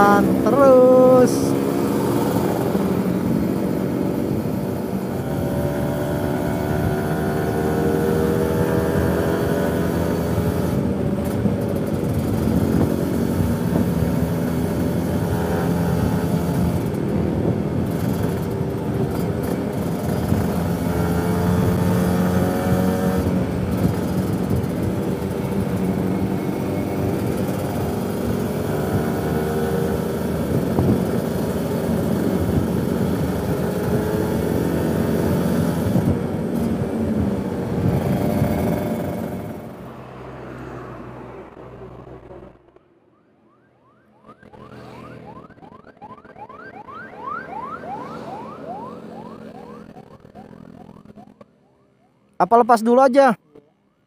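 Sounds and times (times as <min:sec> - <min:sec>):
motorcycle engine revving: 0:00.0 - 0:40.6, 0:44.2 - 0:51.5
wind and road noise: 0:00.0 - 0:54.0.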